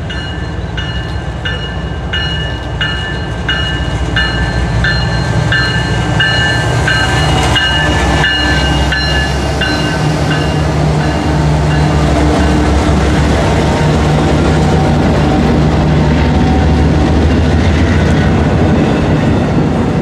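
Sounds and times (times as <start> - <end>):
locomotive bell ringing: 0.0 - 13.0
train engine and wheels rumbling: 0.0 - 20.0.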